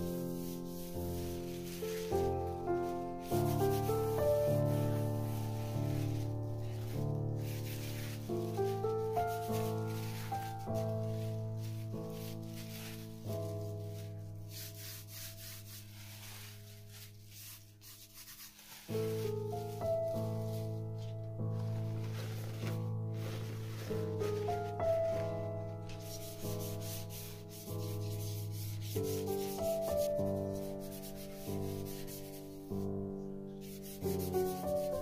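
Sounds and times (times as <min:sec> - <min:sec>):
slow keyboard music: 0:00.0 - 0:35.0
hand rubbing crinkly plastic: 0:00.3 - 0:32.6.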